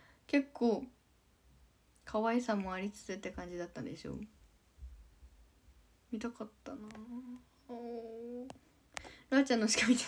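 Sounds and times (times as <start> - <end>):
woman humming: 6.7 - 8.6.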